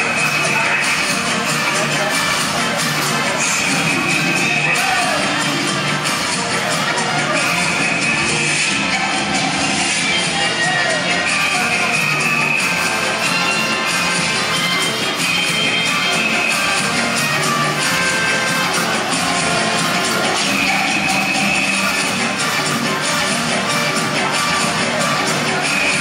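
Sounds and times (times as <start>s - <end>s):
dance music over sound system: 0.0s - 26.0s.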